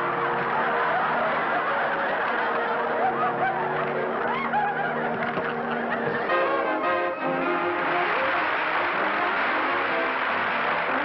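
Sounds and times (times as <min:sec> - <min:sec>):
studio audience laughing: 0:00.0 - 0:11.0.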